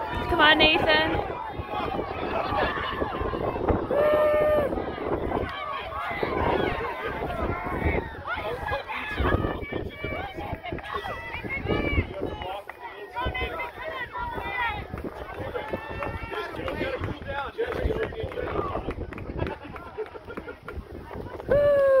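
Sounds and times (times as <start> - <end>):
spectators shouting and cheering: 0.0 - 20.0, 20.9 - 22.0.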